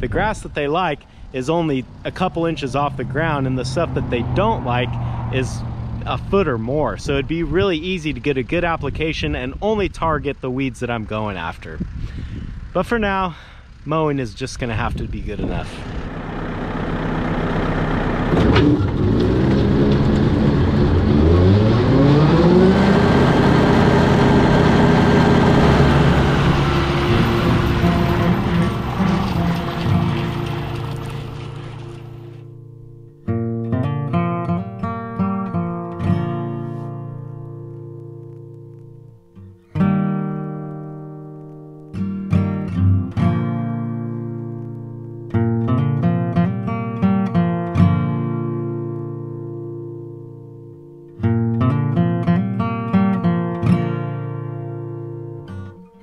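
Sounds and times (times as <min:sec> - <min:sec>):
acoustic guitar music: 0:00.0 - 0:12.0, 0:14.8 - 0:56.0
tractor engine with rotary mower: 0:00.7 - 0:08.2, 0:15.4 - 0:32.5.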